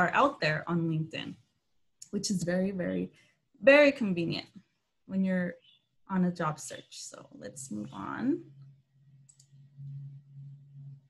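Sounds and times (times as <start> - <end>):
low hum: 7.2 - 11.0
computer mouse clicks: 9.2 - 10.0.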